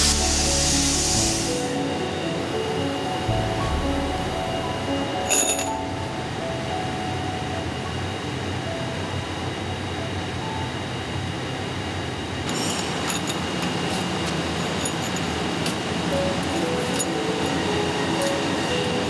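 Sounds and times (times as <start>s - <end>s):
factory machinery noise: 0.0s - 19.0s
metal blanks clinking: 5.3s - 5.8s, 12.5s - 18.4s.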